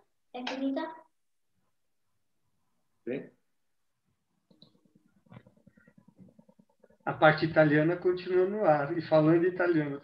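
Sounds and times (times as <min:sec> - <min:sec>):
muffled speech over video call: 0:04.3 - 0:10.0.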